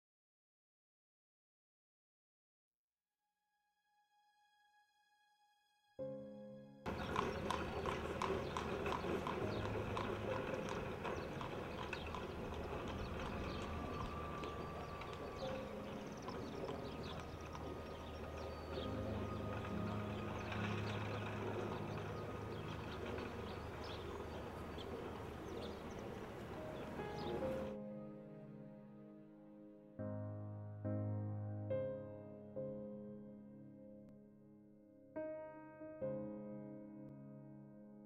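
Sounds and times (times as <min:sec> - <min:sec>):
horse hooves clip-clopping on pavement: 0:06.9 - 0:27.7.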